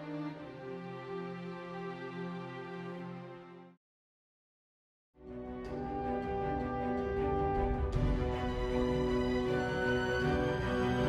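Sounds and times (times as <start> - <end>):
string orchestra playing chords: 0.0 - 3.8, 5.2 - 11.0.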